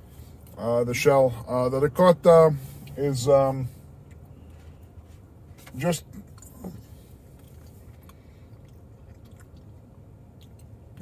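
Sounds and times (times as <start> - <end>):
low steady hum: 0.0 - 11.0
faint chewing: 4.0 - 11.0.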